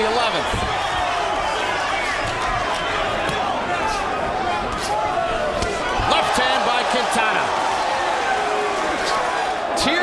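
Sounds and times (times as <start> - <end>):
crowd voices and shouts: 0.0 - 10.0.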